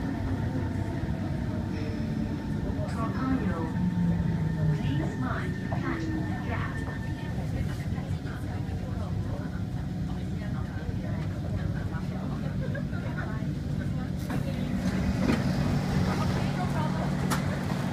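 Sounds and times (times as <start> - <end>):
passengers talking: 0.0 - 17.9
train low hum: 0.0 - 17.9.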